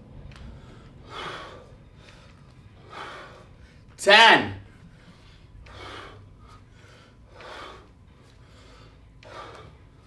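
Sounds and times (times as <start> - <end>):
man forceful breaths out: 5.0 - 9.8.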